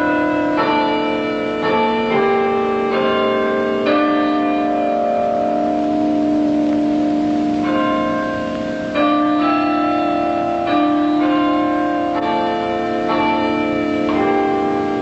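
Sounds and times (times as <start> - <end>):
bells ringing a slow tune: 0.0 - 15.0.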